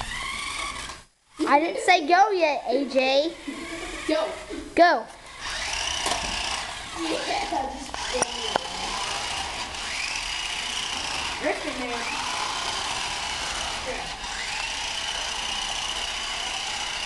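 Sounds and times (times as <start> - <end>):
toy car electric motors whining: 0.0 - 1.5, 2.8 - 17.0
sharp clicks: 14.4 - 15.1.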